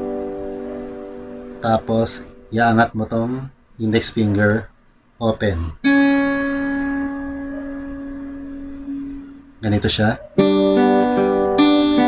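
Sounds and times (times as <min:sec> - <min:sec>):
acoustic guitar note plucked: 0:00.0 - 0:02.9, 0:05.8 - 0:09.6, 0:10.3 - 0:12.0.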